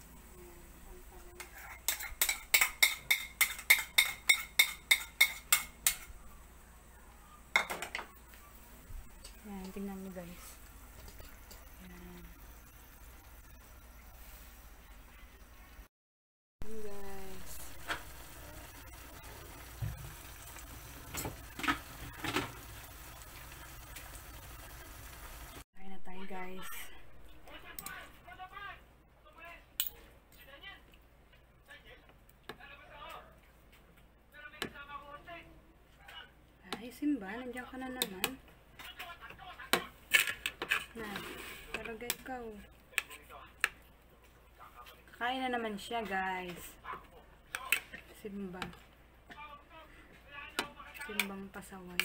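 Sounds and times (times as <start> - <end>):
sauce simmering in a wok: 16.6 - 25.6.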